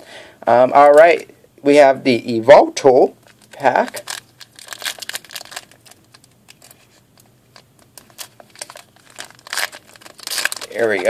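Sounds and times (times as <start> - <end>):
foil wrapper crinkling and tearing: 3.2 - 11.0.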